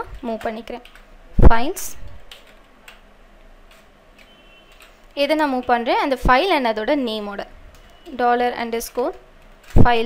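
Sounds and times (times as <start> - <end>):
faint computer keyboard keystrokes: 0.0 - 1.2, 2.0 - 5.8, 7.7 - 10.0.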